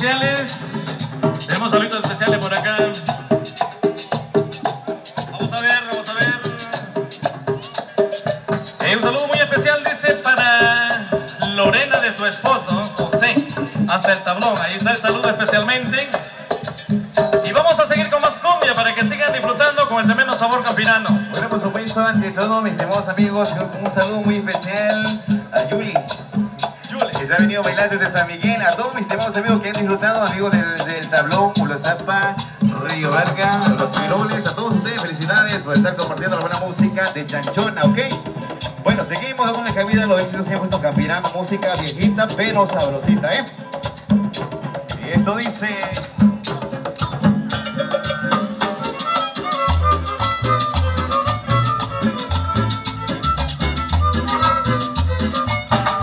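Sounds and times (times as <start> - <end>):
percussion beat: 0.0 - 56.0
string band playing cumbia: 0.0 - 56.0
upright bass: 0.0 - 56.0
violins playing melody: 48.4 - 56.0.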